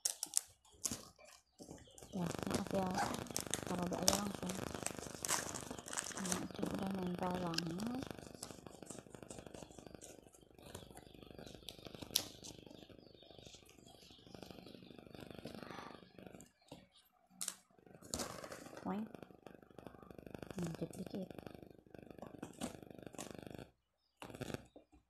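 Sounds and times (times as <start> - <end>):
wrapping paper crinkling: 0.0 - 12.6.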